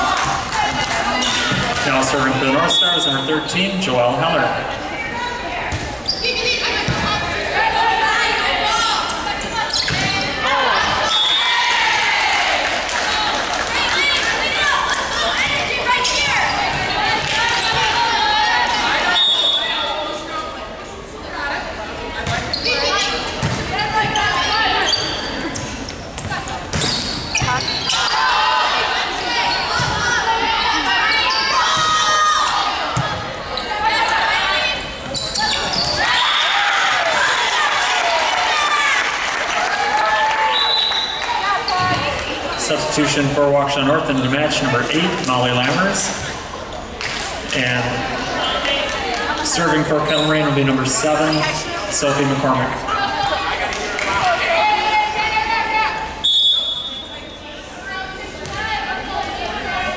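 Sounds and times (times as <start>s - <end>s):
spectators cheering: 36.0s - 41.7s.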